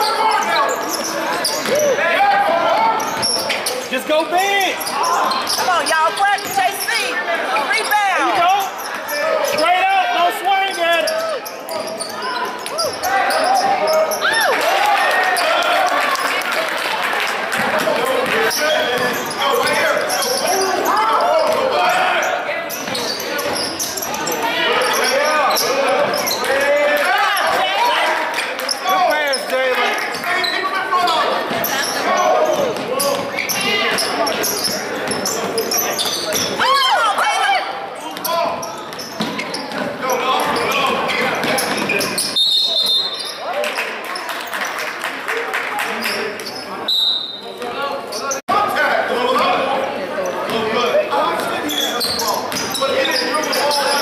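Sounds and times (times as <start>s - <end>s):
voices and shouts in a gym: 0.0s - 54.0s.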